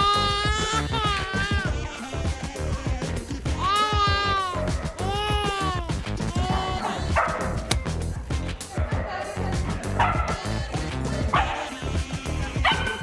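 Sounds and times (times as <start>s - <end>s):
background music: 0.0s - 13.0s
puppy barking: 6.8s - 7.7s, 11.3s - 11.7s, 12.6s - 13.0s.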